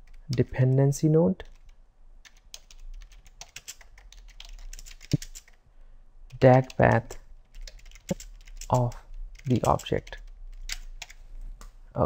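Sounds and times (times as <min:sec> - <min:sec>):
typing on computer keyboard: 0:01.4 - 0:05.6, 0:06.3 - 0:11.2.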